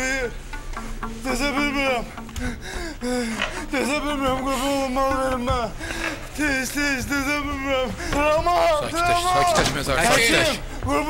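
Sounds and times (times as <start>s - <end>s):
man moaning and gasping: 2.1s - 4.9s.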